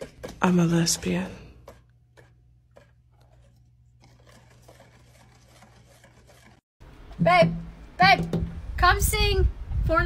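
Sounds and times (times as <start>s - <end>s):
whisk scraping metal bowl: 0.0s - 6.6s.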